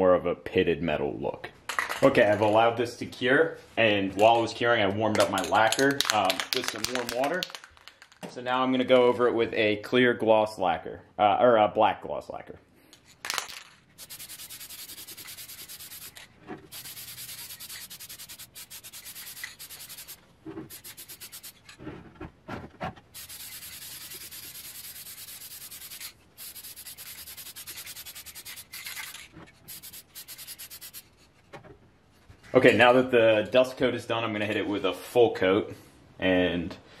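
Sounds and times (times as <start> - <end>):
aerosol can spraying: 14.0 - 21.6, 23.2 - 31.1.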